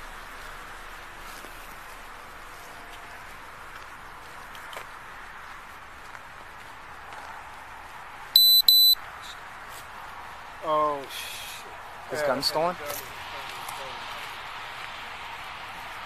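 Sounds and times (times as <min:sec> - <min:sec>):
background hiss: 0:00.0 - 0:16.0
high electronic beeps: 0:08.4 - 0:09.0.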